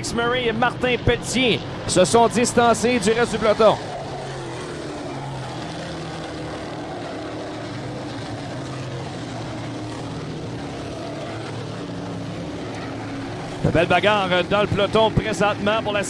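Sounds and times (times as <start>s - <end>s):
race car engines droning: 0.0s - 16.0s.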